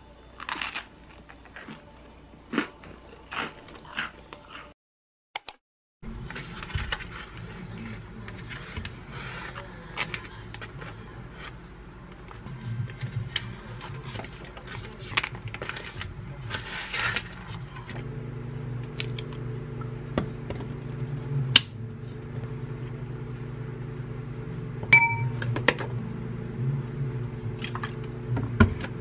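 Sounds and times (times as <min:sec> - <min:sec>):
plastic wrappers crinkling: 0:13.8 - 0:18.0
appliance beep: 0:24.9 - 0:25.6
spoon clinking in glass bowl: 0:25.0 - 0:25.4.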